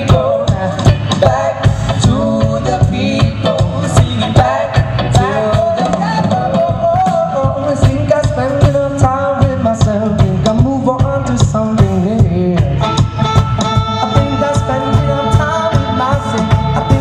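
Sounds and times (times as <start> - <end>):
live band playing: 0.0 - 17.0
saxophone melody: 12.6 - 17.0.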